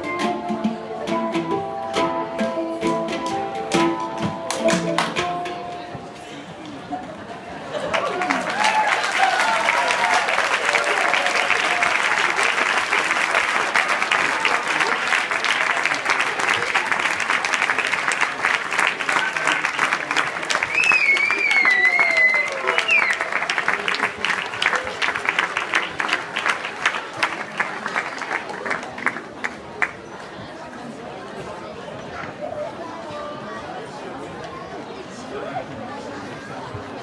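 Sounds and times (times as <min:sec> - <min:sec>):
audience applauding and cheering: 0:07.8 - 0:29.5.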